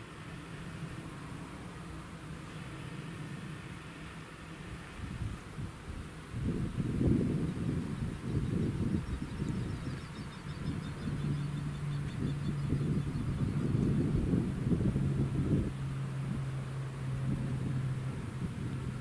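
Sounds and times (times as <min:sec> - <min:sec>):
distant tractor engine hum: 0:00.0 - 0:19.0
wind rumbling on microphone: 0:04.8 - 0:19.0.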